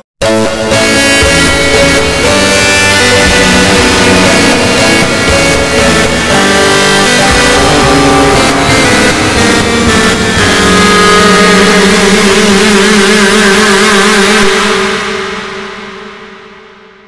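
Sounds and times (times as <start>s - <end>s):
choppy distorted music: 0.2s - 15.7s
harsh low drone: 0.8s - 15.7s.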